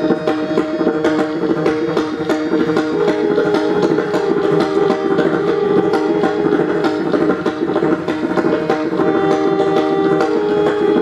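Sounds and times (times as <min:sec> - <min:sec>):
barrel drum strokes: 0:00.0 - 0:11.0
harmonium melodic loop: 0:00.0 - 0:11.0.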